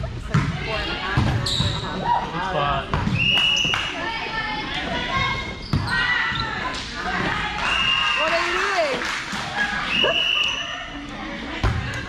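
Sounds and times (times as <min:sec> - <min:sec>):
voices echoing in gym: 0:00.0 - 0:12.0
volleyball bouncing on hard floor: 0:11.6 - 0:12.0.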